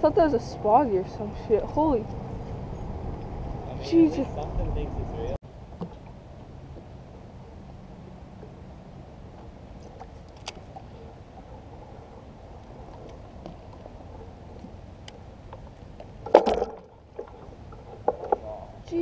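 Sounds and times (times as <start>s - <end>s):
water lapping: 5.6s - 19.0s.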